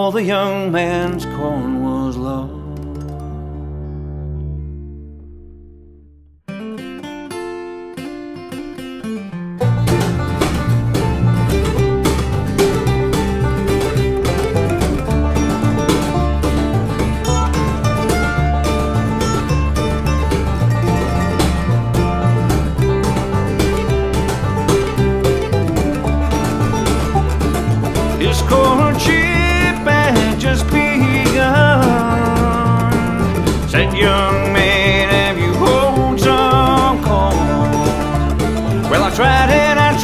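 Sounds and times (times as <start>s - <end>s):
bluegrass band playing: 9.6s - 40.0s
single picked instrument lead-in: 9.6s - 40.0s.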